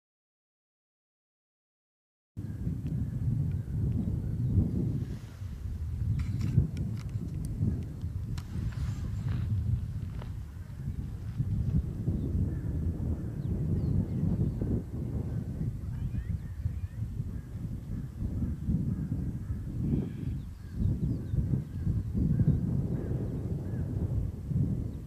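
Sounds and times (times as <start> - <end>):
wind buffeting microphone: 2.4 - 25.0
small birds chirping: 6.0 - 23.9.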